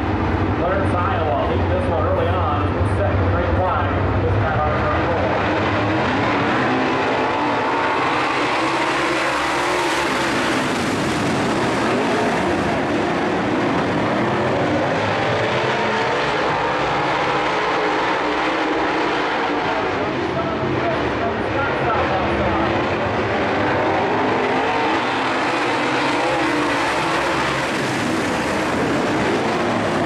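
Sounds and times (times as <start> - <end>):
race car engines passing: 0.0 - 30.0.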